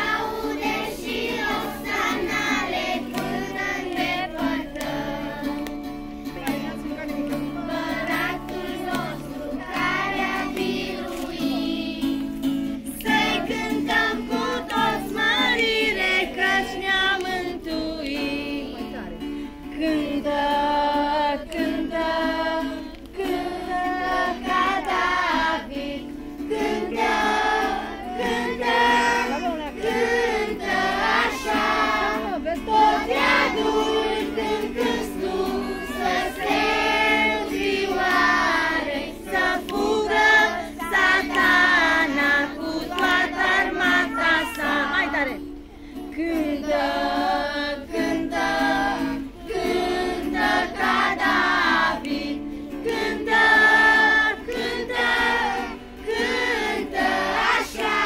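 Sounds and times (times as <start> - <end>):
children singing: 0.0 - 5.7, 6.4 - 18.7, 19.9 - 45.3, 46.1 - 58.0
acoustic guitar: 0.0 - 58.0.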